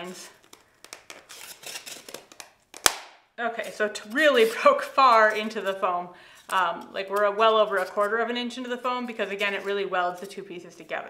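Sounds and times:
foam board snapping: 2.1s - 3.2s.

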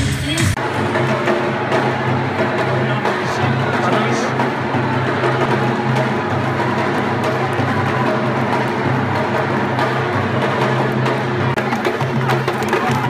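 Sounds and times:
percussion music with loud beat: 0.0s - 13.0s.

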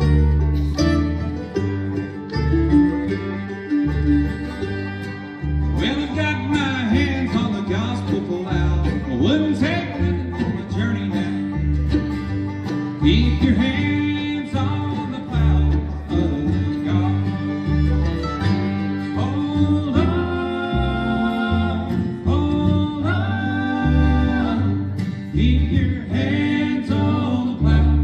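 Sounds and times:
fiddle sliding melody: 0.0s - 24.9s
acoustic guitar: 0.0s - 28.0s
banjo: 0.0s - 28.0s
mandolin: 0.0s - 28.0s
upright bass pulsing: 0.0s - 28.0s.

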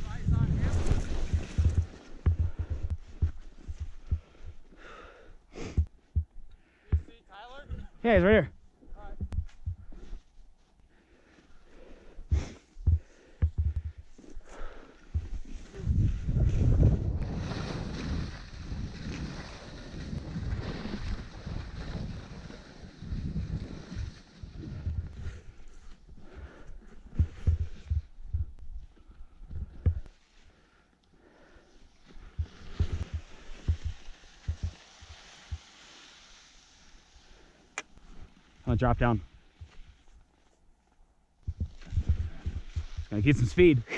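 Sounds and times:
skis scraping over packed snow: 0.0s - 4.4s, 14.4s - 28.0s, 31.9s - 40.6s, 41.5s - 43.9s
wind rumbling on microphone: 0.0s - 4.4s, 15.2s - 26.1s, 32.2s - 35.6s, 41.4s - 43.7s.

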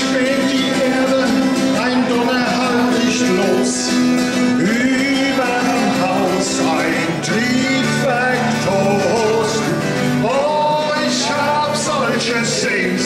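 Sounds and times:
man singing folk song: 0.0s - 13.0s
strummed acoustic guitar: 0.0s - 13.0s.

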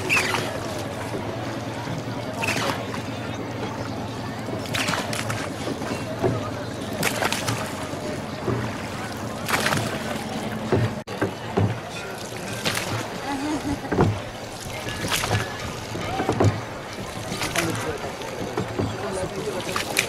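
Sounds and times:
oars splashing in water: 0.0s - 20.0s
steady watery background: 0.0s - 20.0s.

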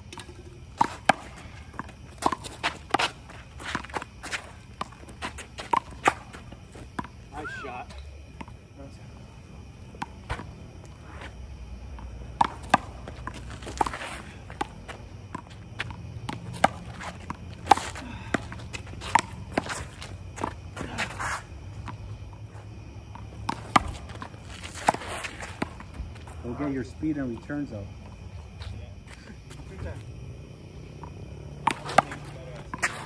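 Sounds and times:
sneaker footsteps and scuffs: 0.8s - 7.6s, 12.4s - 26.6s.

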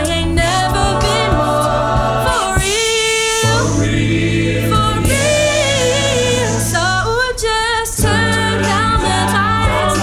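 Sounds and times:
sung bass line: 0.0s - 2.7s, 3.4s - 7.3s, 8.0s - 10.0s
a cappella group singing: 0.0s - 10.0s
vocal percussion: 0.0s - 10.0s.

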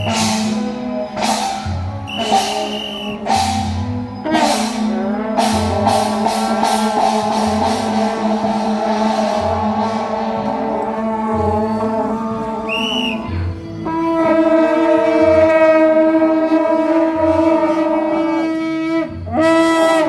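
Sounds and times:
high whistle-like tone: 0.0s - 0.6s, 2.0s - 3.8s, 12.6s - 13.5s
low drum beat: 0.0s - 11.9s
brass horns blowing held note: 0.0s - 20.0s.

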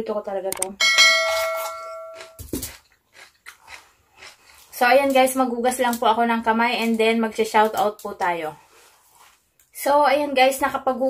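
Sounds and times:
notification ding: 0.8s - 2.4s
crunchy vegetables being chewed: 1.3s - 6.0s.

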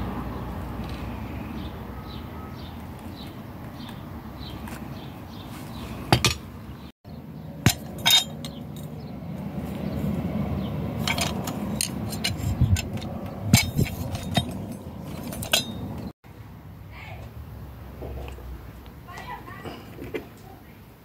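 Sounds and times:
metallic clinks and knocks: 7.6s - 9.0s, 11.0s - 16.1s.

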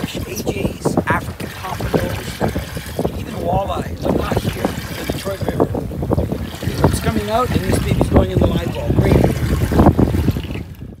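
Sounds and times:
water slapping on a boat: 0.0s - 11.0s
wind buffeting microphone: 0.0s - 11.0s.

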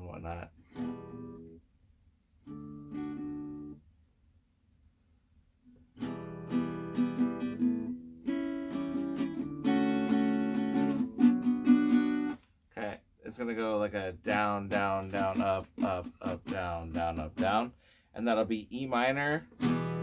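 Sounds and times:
acoustic guitar strumming: 0.6s - 1.6s, 2.4s - 3.8s, 5.9s - 12.4s, 14.2s - 17.7s, 19.4s - 20.0s.

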